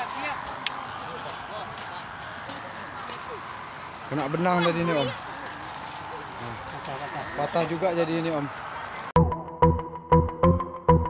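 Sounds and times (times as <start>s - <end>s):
steady outdoor noise: 0.0s - 9.3s.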